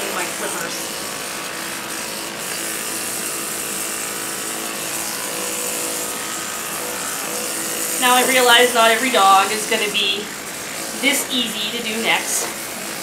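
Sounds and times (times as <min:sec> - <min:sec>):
electric pet clippers running: 0:00.0 - 0:13.0.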